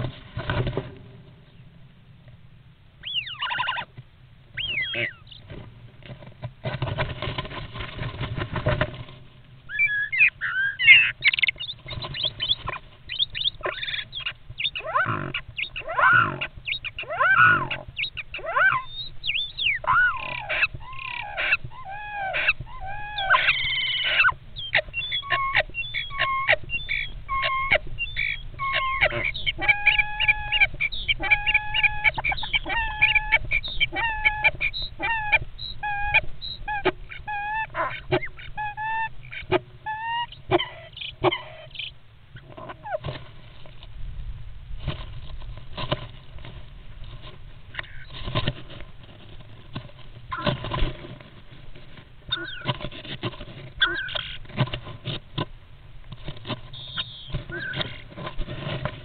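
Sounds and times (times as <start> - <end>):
starlings calling: 3.0 - 3.9, 4.5 - 5.5, 9.7 - 43.0, 52.3 - 52.8, 53.8 - 54.5, 56.6 - 58.1.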